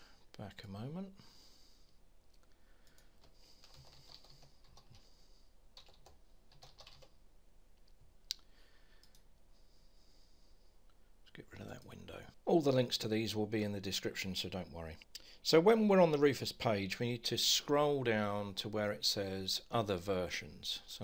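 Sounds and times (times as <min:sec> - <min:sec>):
keyboard typing: 0:02.8 - 0:05.0, 0:05.8 - 0:07.2.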